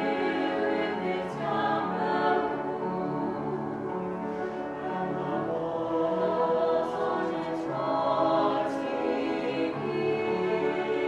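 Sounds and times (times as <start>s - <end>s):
choir singing held chords: 0.0s - 11.0s.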